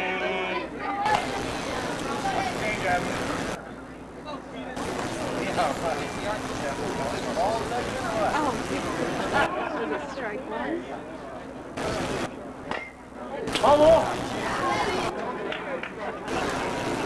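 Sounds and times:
chatter of several voices: 0:00.0 - 0:17.0
steady hiss: 0:01.1 - 0:03.6, 0:04.8 - 0:09.5.

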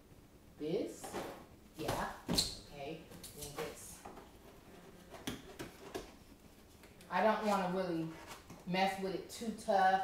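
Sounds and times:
faint cardboard rustling: 0:03.1 - 0:08.7.

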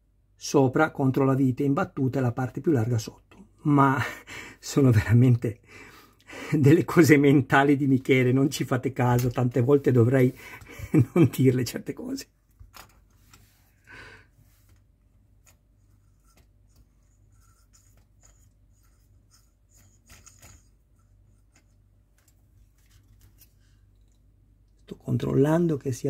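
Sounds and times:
low steady hum: 0:00.0 - 0:26.0
fingers handling plastic parts: 0:12.5 - 0:13.5, 0:14.6 - 0:24.9.

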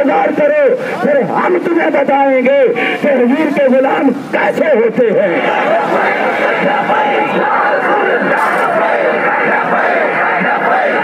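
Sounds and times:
crowd of men shouting slogans: 0:00.0 - 0:02.2, 0:02.9 - 0:11.0.

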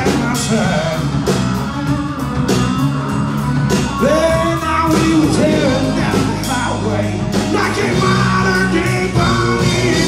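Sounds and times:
drum kit steady beat: 0:00.0 - 0:10.0
electric guitars: 0:00.0 - 0:10.0.

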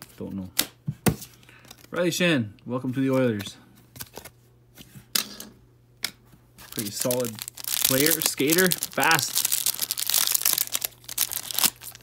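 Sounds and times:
card rustle: 0:06.6 - 0:12.0.

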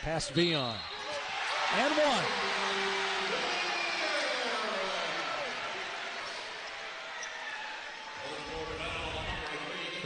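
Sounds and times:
crowd cheering and shouting: 0:01.0 - 0:09.6.

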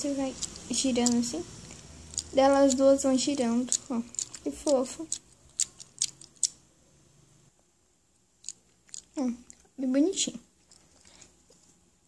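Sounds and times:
plastic toy clicks: 0:00.3 - 0:01.3, 0:02.1 - 0:06.6.

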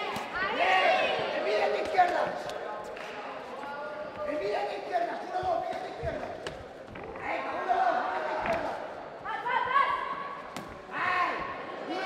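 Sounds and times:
voices around ring: 0:00.0 - 0:12.0.

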